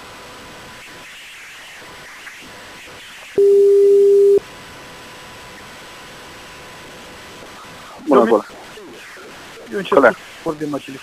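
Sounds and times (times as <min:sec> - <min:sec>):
telephone line hiss: 0:03.4 - 0:04.4
telephone ringback tone: 0:03.4 - 0:04.4.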